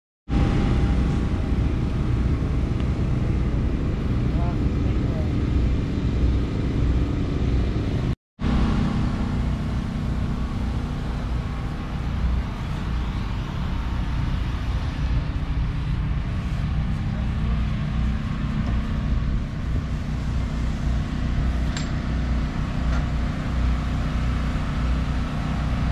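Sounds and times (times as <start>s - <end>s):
race car engine idling: 8.4s - 25.9s.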